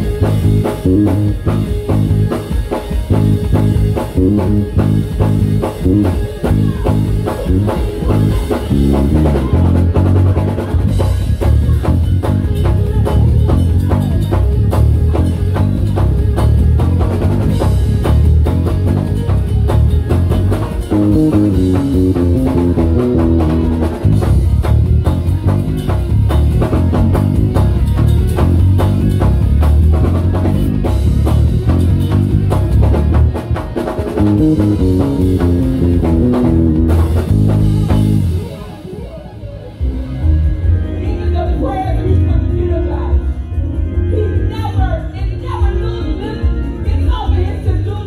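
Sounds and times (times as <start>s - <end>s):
drum groove: 0.0s - 41.3s
electric bass through amplifier: 0.0s - 48.0s.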